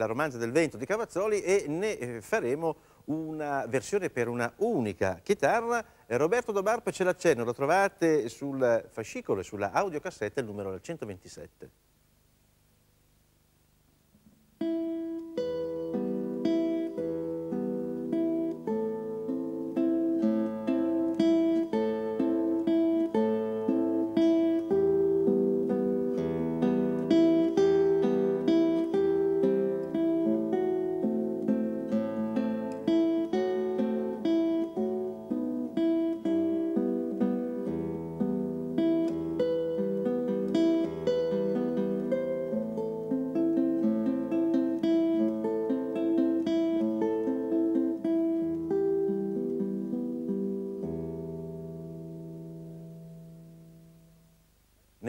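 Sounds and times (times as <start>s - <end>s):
classical guitar fingerstyle: 14.2s - 54.5s.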